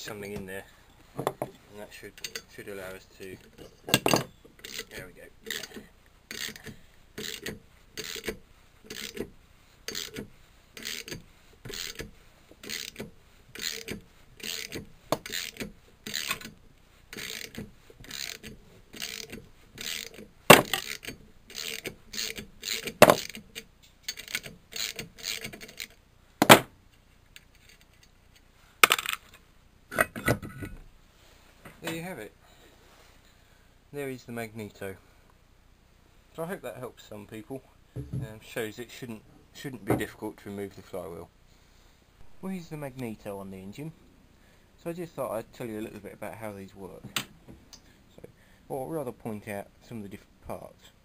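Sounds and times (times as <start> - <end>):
ratchet spanner clicking: 5.5 - 9.2, 9.9 - 10.2, 10.8 - 16.5, 17.1 - 23.4.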